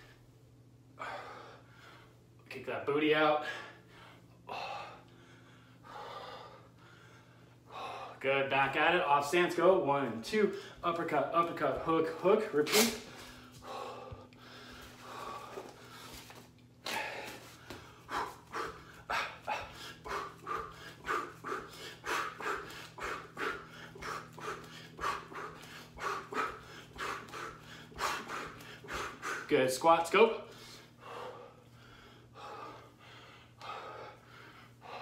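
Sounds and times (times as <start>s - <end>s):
man breathing hard: 0.0s - 2.4s, 3.3s - 8.2s, 10.4s - 10.9s, 11.8s - 35.0s
low steady hum: 0.0s - 35.0s.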